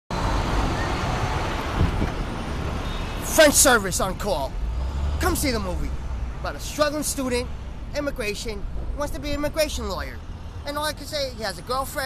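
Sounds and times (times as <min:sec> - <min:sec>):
city street traffic: 0:00.1 - 0:12.0
wind on microphone: 0:01.6 - 0:02.4.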